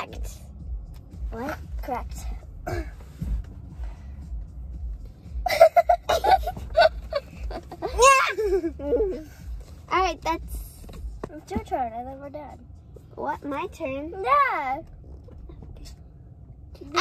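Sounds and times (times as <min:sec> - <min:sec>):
girls laughing: 0:05.4 - 0:09.3.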